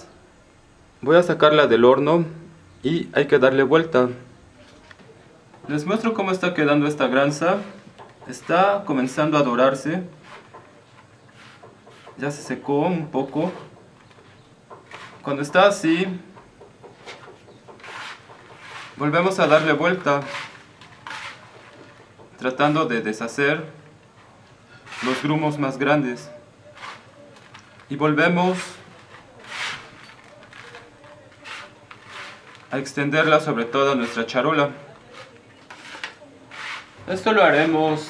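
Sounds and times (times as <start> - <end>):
metal scraper on baking tray: 14.8 - 15.8, 17.1 - 22.0, 24.9 - 25.5, 26.7 - 27.2, 28.6 - 38.0.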